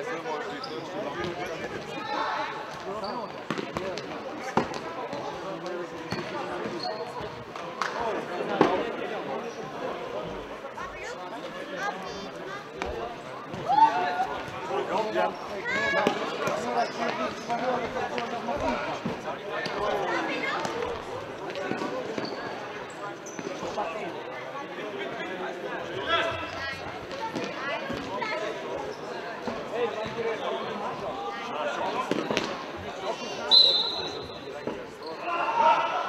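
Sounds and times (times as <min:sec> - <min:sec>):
voices echoing in a hall: 0:00.0 - 0:36.0.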